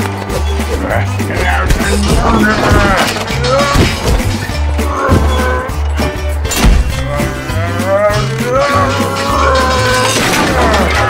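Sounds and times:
cartoon background music: 0.0s - 11.0s
wavering moo-like vocal call: 4.8s - 5.8s.

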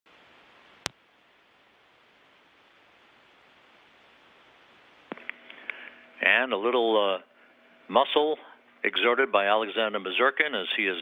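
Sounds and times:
faint steady hiss: 0.1s - 11.0s.

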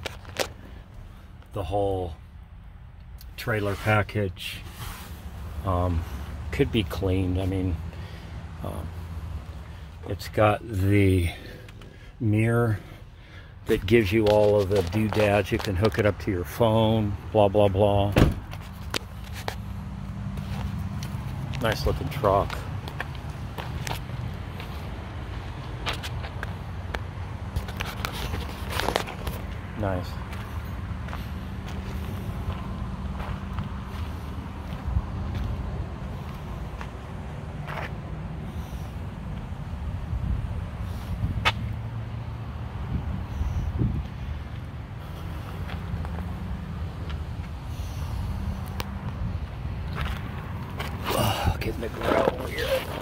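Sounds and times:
footsteps on gravel: 13.7s - 16.0s, 20.3s - 35.6s, 49.8s - 53.0s.

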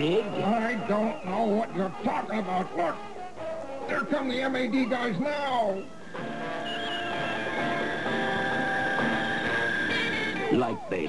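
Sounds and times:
high held tone: 5.8s - 11.0s
steady drone of held tones: 5.8s - 11.0s.

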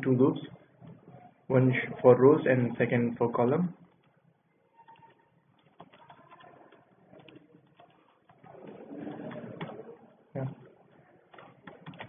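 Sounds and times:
computer keyboard typing: 4.8s - 8.5s, 11.3s - 12.0s.

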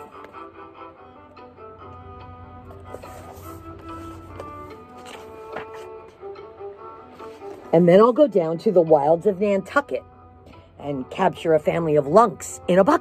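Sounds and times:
gentle instrumental music: 0.0s - 13.0s
book pages rustling: 2.7s - 6.2s, 7.0s - 7.7s.

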